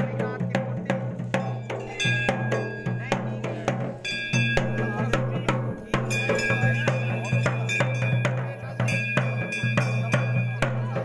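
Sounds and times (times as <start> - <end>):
drums beaten fast: 0.0 - 11.0
bell-like metallic ringing: 1.2 - 11.0.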